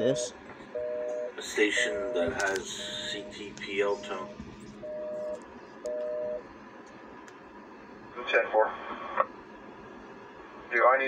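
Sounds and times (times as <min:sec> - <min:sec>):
man speaking over radio: 0:01.4 - 0:04.4, 0:08.2 - 0:08.9, 0:10.7 - 0:11.0
police radio transmission: 0:01.4 - 0:04.4
faint radio hiss: 0:01.4 - 0:04.9, 0:07.5 - 0:11.0.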